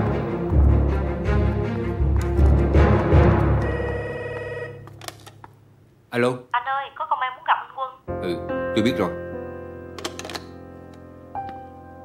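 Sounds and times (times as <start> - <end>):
desk telephone ringing: 3.6 - 5.2.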